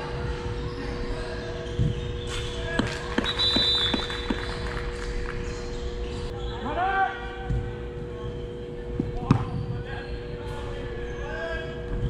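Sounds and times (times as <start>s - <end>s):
indoor arena hum: 0.0s - 12.0s
gloved hands clapping: 2.3s - 5.4s.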